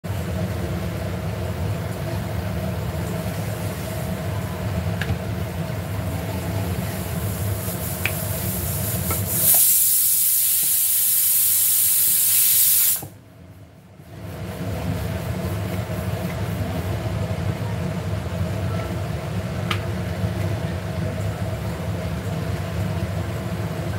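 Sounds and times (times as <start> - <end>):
low kitchen hum: 0.0 - 23.9
pressure cooker hissing steam: 6.9 - 13.2.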